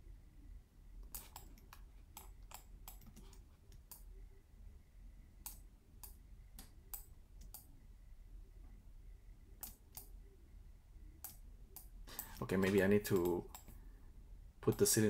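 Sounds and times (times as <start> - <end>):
low room hum: 0.0 - 15.0
faint computer clicks: 11.2 - 13.8.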